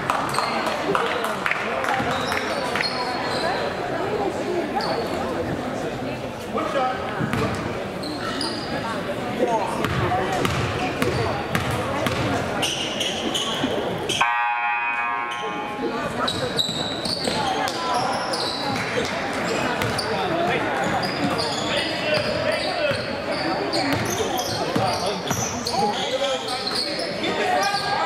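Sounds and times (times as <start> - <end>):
crowd chatter: 0.0 - 28.0
sneaker squeaks: 2.0 - 3.8, 4.8 - 5.2, 7.2 - 8.9, 9.8 - 14.2, 16.1 - 28.0.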